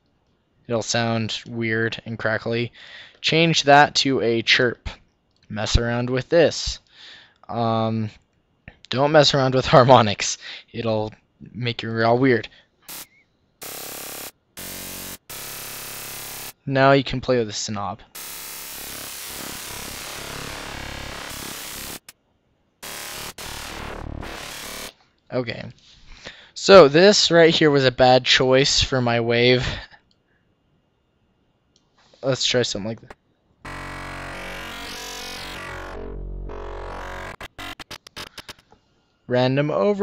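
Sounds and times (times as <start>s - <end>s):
synthesizer note: 12.9s - 16.6s, 18.2s - 22.1s, 22.8s - 24.9s, 33.7s - 38.6s
short stuttering clicks: 34.1s - 38.6s.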